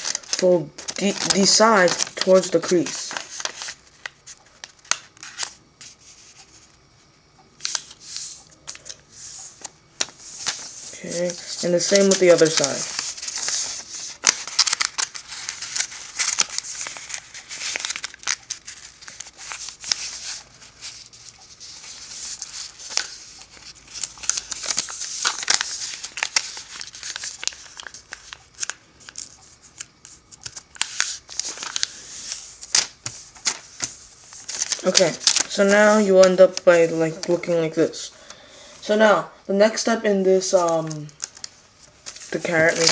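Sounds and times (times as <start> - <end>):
paper rustling and crinkling: 0.0 - 6.7, 7.6 - 37.8, 40.5 - 42.9.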